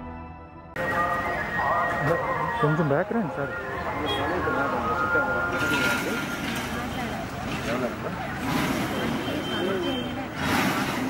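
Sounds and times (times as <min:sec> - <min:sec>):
people talking outdoors: 0:00.8 - 0:11.0.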